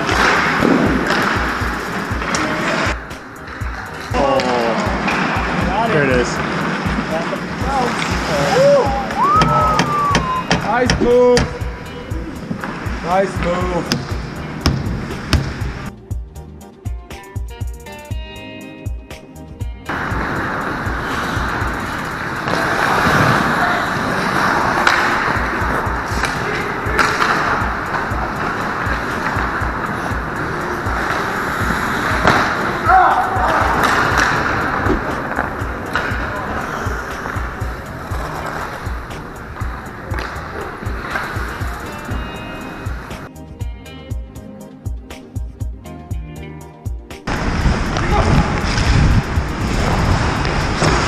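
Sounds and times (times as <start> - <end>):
stick and puck knocks: 0.0 - 2.6, 13.8 - 15.6, 24.8 - 29.8, 31.0 - 32.7, 33.4 - 36.4, 39.1 - 41.4
skates scraping on ice: 0.0 - 15.9, 19.9 - 43.3, 47.3 - 51.0
background music with low beat: 0.0 - 51.0
players shouting: 7.6 - 11.6, 30.3 - 38.6.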